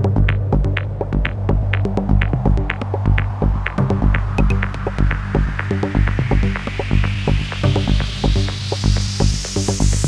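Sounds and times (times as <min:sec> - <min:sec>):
kick drum: 0:00.1 - 0:04.6
pulsing bassline: 0:03.4 - 0:07.4.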